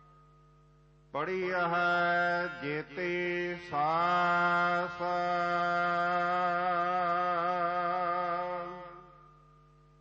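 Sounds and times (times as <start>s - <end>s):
harmonium drone: 1.2s - 9.3s.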